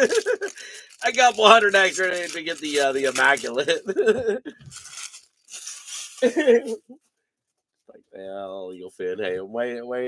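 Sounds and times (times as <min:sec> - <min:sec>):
man laughing loudly: 0:00.0 - 0:00.6, 0:03.6 - 0:04.6, 0:06.2 - 0:07.0
papery rustle: 0:00.0 - 0:03.8, 0:04.7 - 0:06.8.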